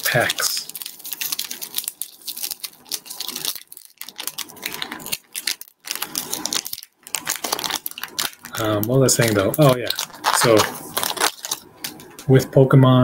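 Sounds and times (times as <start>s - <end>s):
cards and foil wrappers crinkling: 0.0s - 12.3s.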